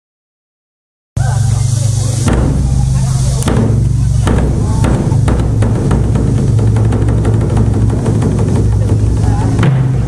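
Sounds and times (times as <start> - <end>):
drum ensemble rapid drumming: 1.5 - 10.0.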